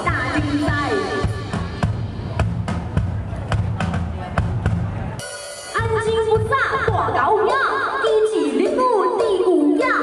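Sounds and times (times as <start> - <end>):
steady bass line: 0.0 - 7.3
live band music: 0.0 - 10.0.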